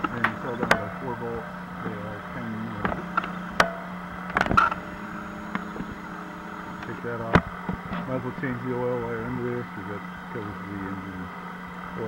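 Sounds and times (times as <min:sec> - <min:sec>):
sharp clicks and knocks: 0:00.0 - 0:01.0, 0:02.7 - 0:04.8, 0:06.8 - 0:08.1
steady low hum: 0:00.0 - 0:12.0.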